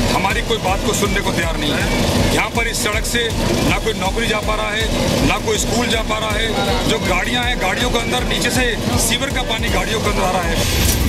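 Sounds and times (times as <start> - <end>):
man speaking into microphones: 0.0 - 10.7
low outdoor rumble: 0.0 - 11.0.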